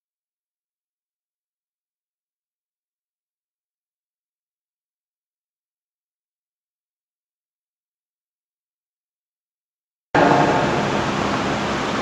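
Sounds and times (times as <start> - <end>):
steady rushing background noise: 10.2 - 12.0.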